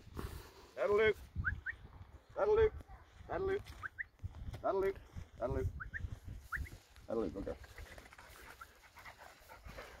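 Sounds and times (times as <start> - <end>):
dog panting rapidly: 7.7 - 10.0.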